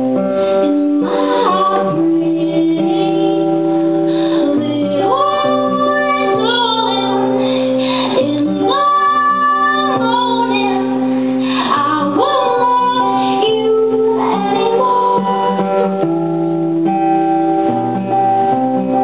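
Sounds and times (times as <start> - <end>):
acoustic guitar: 0.0 - 19.0
woman singing: 0.1 - 16.0.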